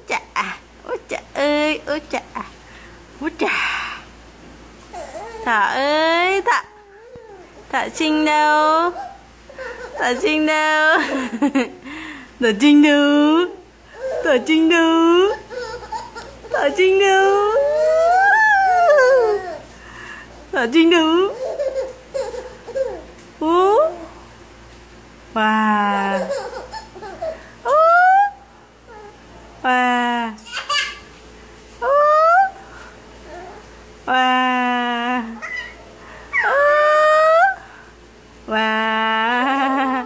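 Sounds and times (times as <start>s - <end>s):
baby squealing: 15.3s - 16.7s, 17.5s - 19.6s, 35.4s - 37.6s.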